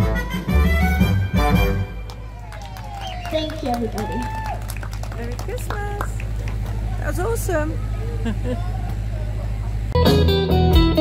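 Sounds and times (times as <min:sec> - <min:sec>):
steady low hum: 0:00.0 - 0:11.0
faint voices: 0:02.2 - 0:10.0
guitar music: 0:10.0 - 0:11.0.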